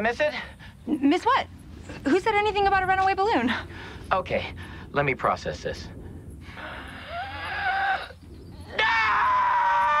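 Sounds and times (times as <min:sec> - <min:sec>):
high-pitched scream: 0:07.0 - 0:10.0.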